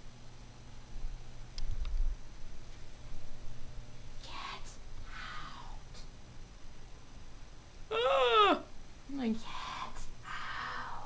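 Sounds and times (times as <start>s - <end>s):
faint breathy sounds: 4.2s - 6.1s, 9.4s - 11.0s
high wailing voice-like cry: 7.9s - 8.7s.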